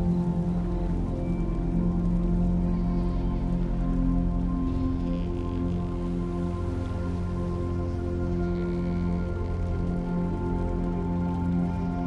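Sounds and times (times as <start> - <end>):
ambient music of held notes: 0.0 - 12.0
soft rain-like patter: 0.0 - 12.0.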